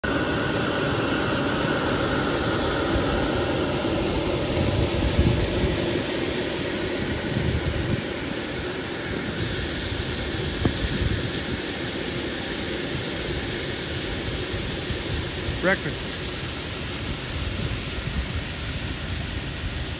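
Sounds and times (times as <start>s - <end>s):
air blower whirring hiss: 0.0s - 19.9s
faint high whine: 0.0s - 19.9s
low rumbling gusts: 1.3s - 19.9s.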